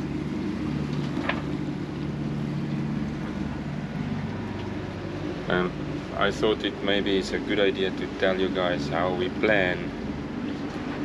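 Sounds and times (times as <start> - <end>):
steady low drone: 0.0 - 11.0
water noise: 0.0 - 11.0
wind: 0.0 - 11.0.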